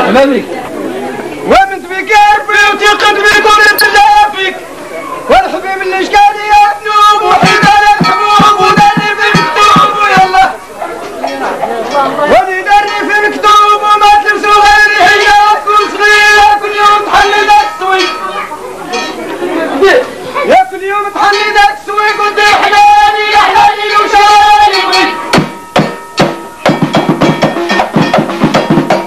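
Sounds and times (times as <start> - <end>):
men talking and calling out: 0.0 - 25.7
hand-struck frame drums: 25.3 - 29.0.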